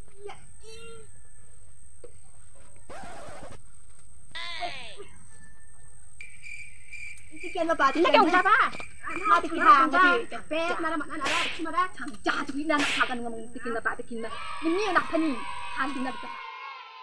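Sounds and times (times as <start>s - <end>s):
woman speaking: 7.3s - 16.3s.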